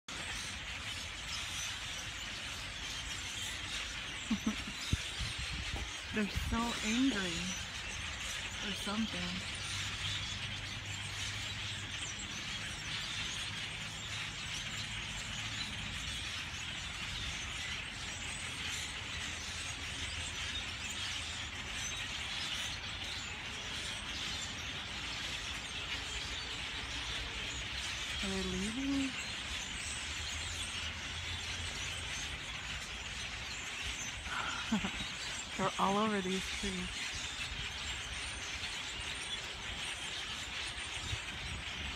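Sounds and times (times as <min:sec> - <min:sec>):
flock of birds calling: 0:00.1 - 0:41.9.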